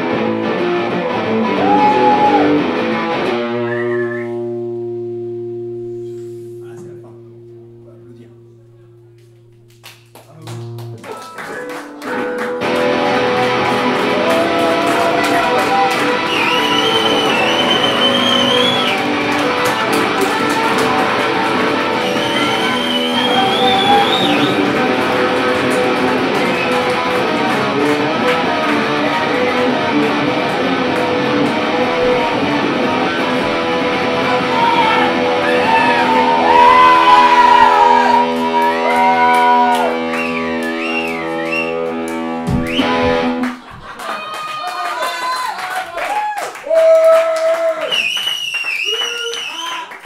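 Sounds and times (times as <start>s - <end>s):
punk rock band playing: 0.0s - 7.8s, 11.0s - 43.9s
guitar strums: 2.2s - 43.6s
high sliding notes: 3.5s - 9.8s.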